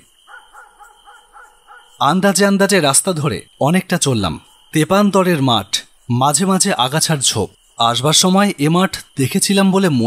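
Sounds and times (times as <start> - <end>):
short repeated animal calls: 0.2 - 2.0.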